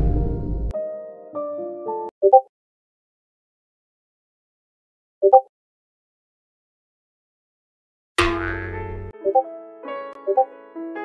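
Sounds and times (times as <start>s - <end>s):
comic ringing hit sound effect: 8.2s - 9.0s.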